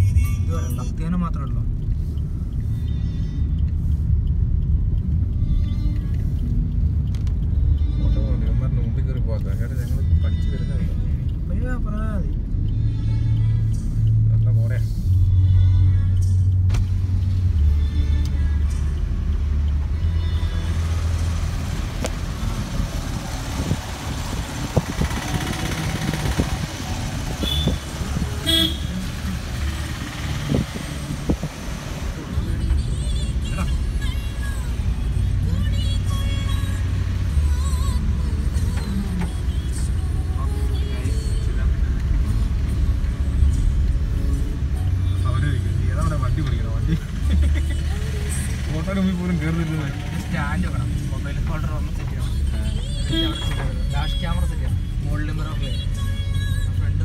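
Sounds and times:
engine and tyre rumble on wet road: 0.0 - 57.0
car horn toot: 27.3 - 29.1, 53.0 - 53.9.

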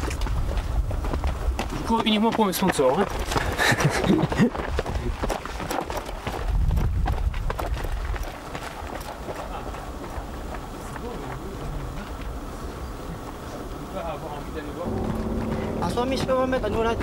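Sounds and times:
running footsteps on dirt path: 0.0 - 14.2, 14.8 - 17.0
outdoor background: 0.0 - 17.0
low rumble: 14.8 - 17.0.

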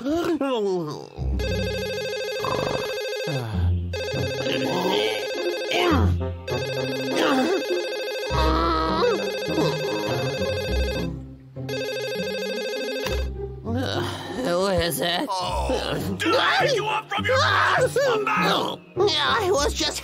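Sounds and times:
mobile phone ringtone: 1.4 - 13.3
sleepy voice groaning and mumbling: 2.4 - 3.8, 8.3 - 10.0, 13.6 - 19.8.

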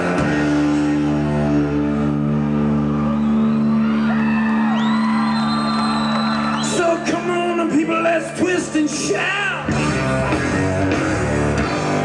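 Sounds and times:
audience whooping and shouting: 2.4 - 7.4.

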